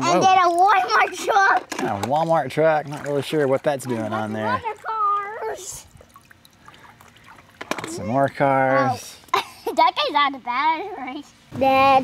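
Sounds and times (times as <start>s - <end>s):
water dripping into pool: 0.4s - 8.6s.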